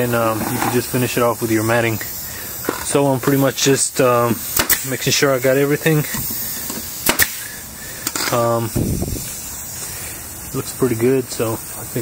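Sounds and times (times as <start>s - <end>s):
steady air hiss: 0.0s - 12.0s
nail gun firing: 4.5s - 4.9s, 7.0s - 7.4s.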